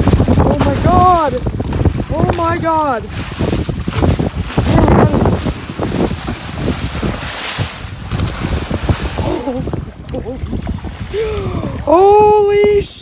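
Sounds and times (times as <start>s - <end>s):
shark splashing in water: 0.0s - 9.8s
wind rumble on microphone: 0.0s - 13.0s.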